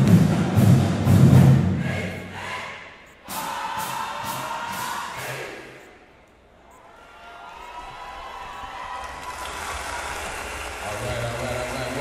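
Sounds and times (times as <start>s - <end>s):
crowd cheering: 6.6s - 12.0s.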